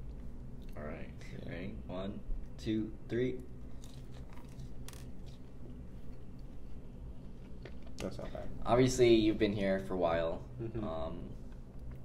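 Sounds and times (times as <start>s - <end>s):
low room hum: 0.0s - 12.0s
chewing food: 3.8s - 6.5s.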